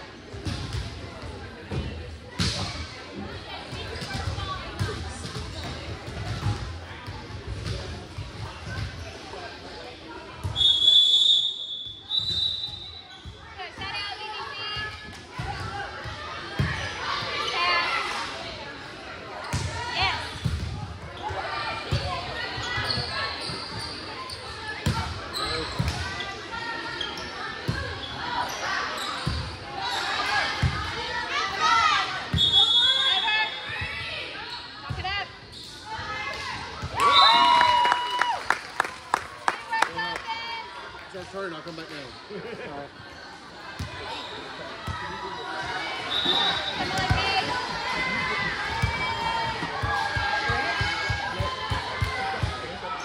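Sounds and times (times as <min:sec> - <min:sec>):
referee's whistle: 0:10.5 - 0:13.2, 0:32.4 - 0:33.7, 0:46.0 - 0:47.2
overlapping voices in echoing hall: 0:36.1 - 0:41.1, 0:43.4 - 0:52.9.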